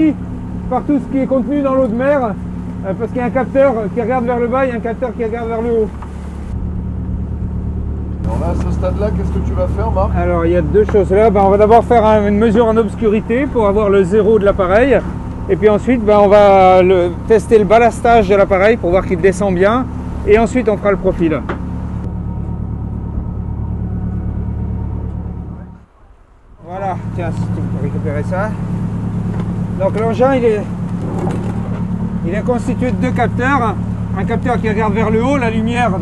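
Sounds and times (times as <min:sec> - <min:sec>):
ship machinery humming: 0:00.0 - 0:36.0.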